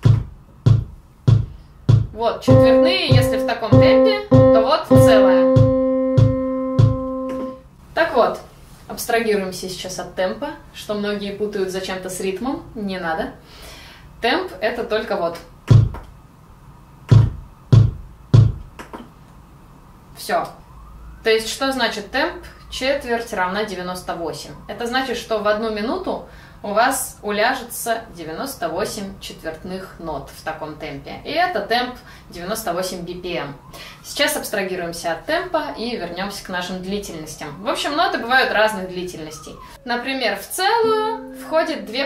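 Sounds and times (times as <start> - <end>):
electronic metronome beats: 1.3 - 7.6, 40.8 - 42.0.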